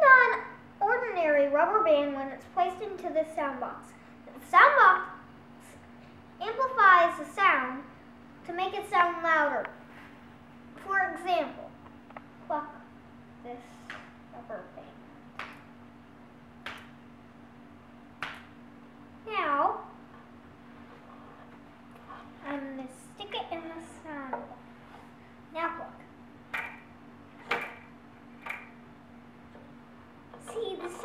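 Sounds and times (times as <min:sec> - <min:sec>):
children's voices: 0:22.4 - 0:24.6, 0:30.4 - 0:31.0.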